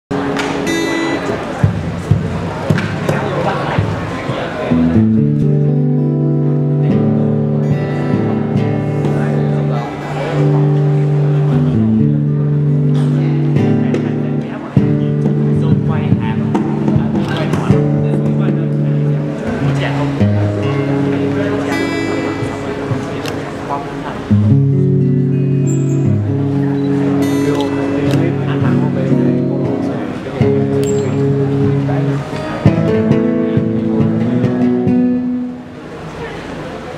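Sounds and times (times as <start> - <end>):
acoustic guitar duet: 0.1 - 36.9
hall noise: 0.1 - 36.9.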